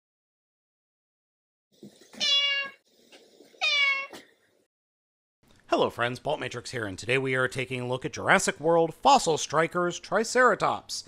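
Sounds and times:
cat meowing: 0:02.2 - 0:02.8, 0:03.6 - 0:04.2.

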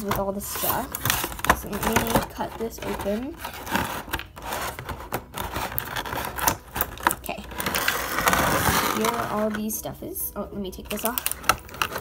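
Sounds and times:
plastic packaging being cut open: 0:00.0 - 0:09.7, 0:10.9 - 0:12.0.

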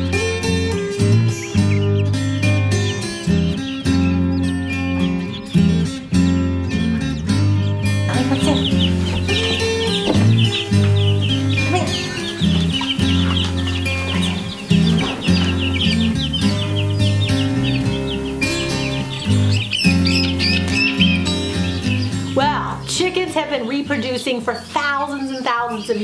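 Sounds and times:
baby chicks peeping: 0:00.0 - 0:26.0
background music: 0:00.0 - 0:26.0.

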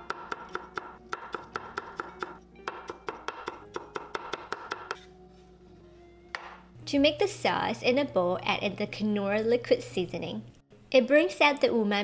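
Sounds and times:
cleaver chopping on wooden board: 0:00.1 - 0:05.1.

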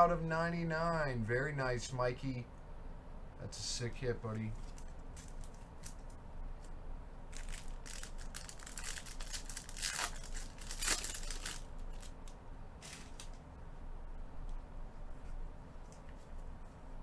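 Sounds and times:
foil wrappers crinkling and tearing: 0:04.5 - 0:06.1, 0:07.3 - 0:13.4.

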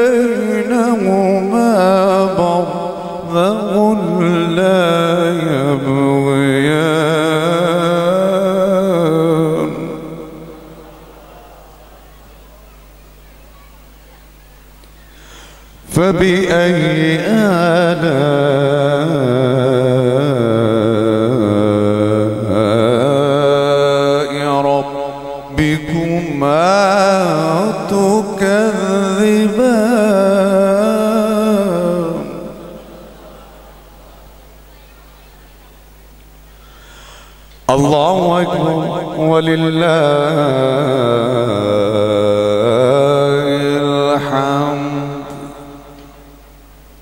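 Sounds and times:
man chanting melodically: 0:00.0 - 0:46.8
low steady hum: 0:00.0 - 0:47.0
man reciting through loudspeakers: 0:00.0 - 0:47.0.

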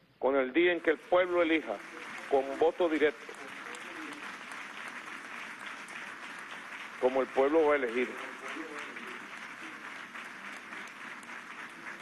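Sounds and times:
audience applauding: 0:00.8 - 0:12.0.

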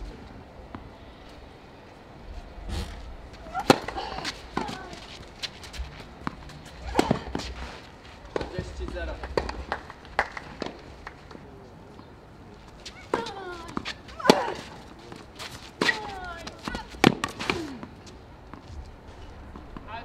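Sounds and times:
racket striking tennis ball: 0:02.7 - 0:05.1, 0:06.2 - 0:07.6, 0:08.3 - 0:10.8, 0:12.8 - 0:18.6.

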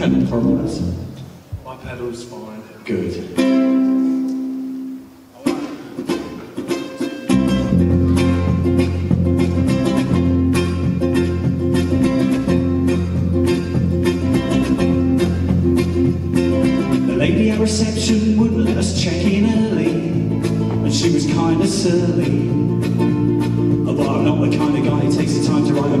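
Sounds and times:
ukulele strumming: 0:03.2 - 0:26.0
electric bass guitar: 0:07.3 - 0:26.0.

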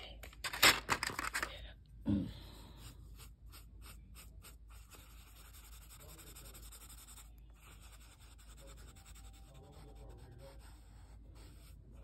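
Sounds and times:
pencil scratching on paper: 0:02.8 - 0:12.0.

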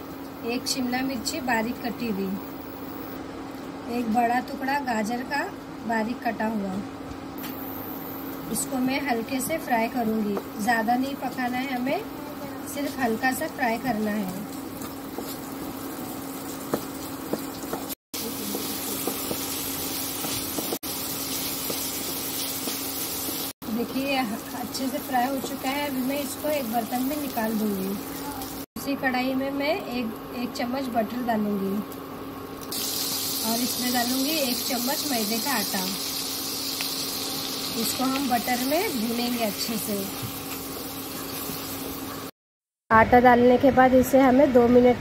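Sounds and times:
vegetables sizzling in butter: 0:07.4 - 0:28.7, 0:32.6 - 0:42.3.

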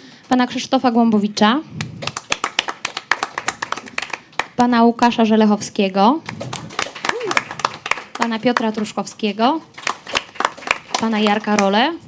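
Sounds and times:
people clapping: 0:01.8 - 0:04.7, 0:06.2 - 0:11.9.

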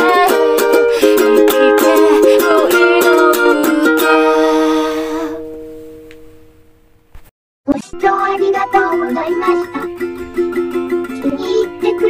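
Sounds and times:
ukulele strumming: 0:00.0 - 0:06.3, 0:07.7 - 0:12.0.

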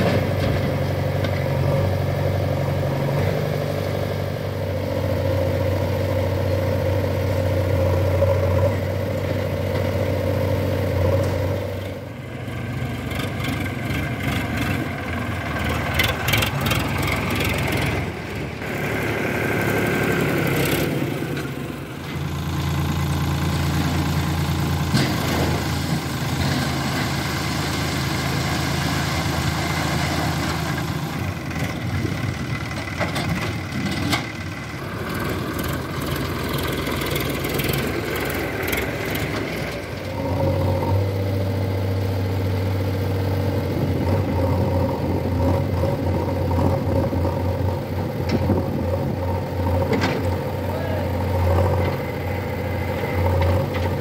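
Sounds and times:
backhoe loader diesel engine: 0:00.0 - 0:54.0
diesel tractor engine running: 0:00.0 - 0:54.0.

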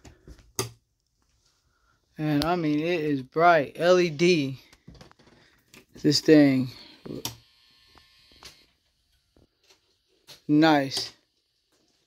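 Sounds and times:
faint electrical whine: 0:00.5 - 0:12.0.

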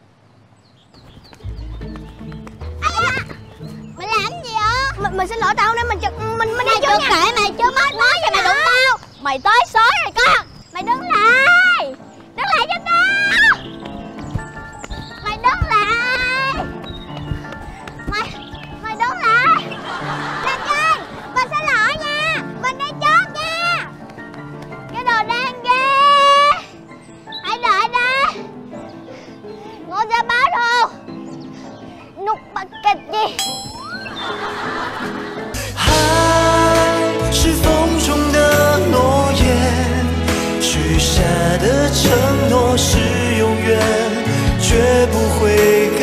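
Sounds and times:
comedy music: 0:01.4 - 0:09.0, 0:10.8 - 0:31.3, 0:32.0 - 0:46.0
canned audience laughter: 0:19.6 - 0:21.3, 0:34.0 - 0:35.9
music with heavy bass line: 0:35.6 - 0:45.8.

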